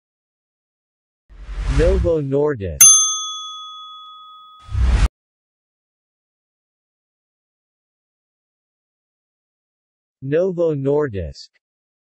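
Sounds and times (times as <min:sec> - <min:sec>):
notification bell ding: 0:02.8 - 0:04.7.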